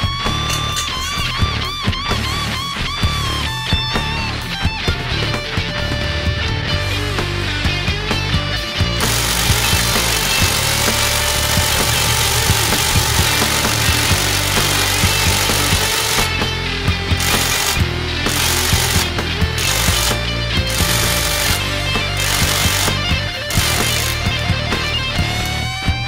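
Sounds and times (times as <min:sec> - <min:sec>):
rock music: 0:00.0 - 0:26.0
impact wrench hammering lug nut: 0:09.0 - 0:16.4, 0:17.2 - 0:24.4.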